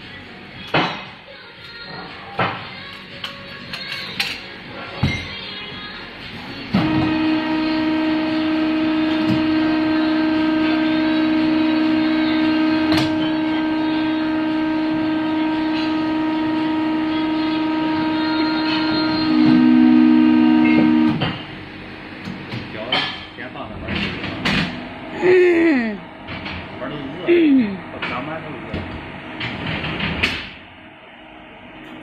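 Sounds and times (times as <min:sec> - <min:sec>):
low machine tone: 0:06.7 - 0:22.4
hydraulic press pump whine: 0:06.7 - 0:22.7.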